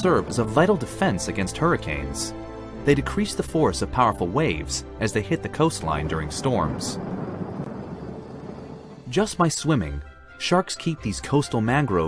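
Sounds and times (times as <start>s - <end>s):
ocean waves breaking: 5.1s - 9.3s.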